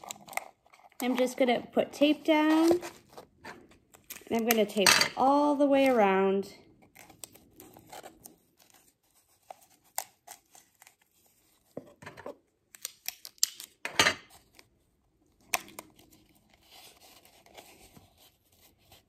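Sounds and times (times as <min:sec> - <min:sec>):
paper crinkling: 0:00.0 - 0:04.5, 0:06.8 - 0:14.7, 0:15.4 - 0:19.0.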